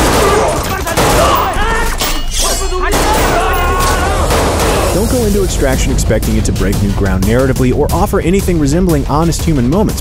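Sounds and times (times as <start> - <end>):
rapid gunfire: 0.0 - 1.6, 2.9 - 5.8
men shouting: 0.0 - 6.0.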